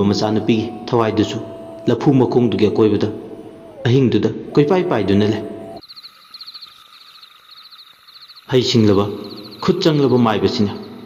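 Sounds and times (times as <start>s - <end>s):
faint steady tone: 0.0s - 11.0s
insect-like chirping: 3.7s - 11.0s.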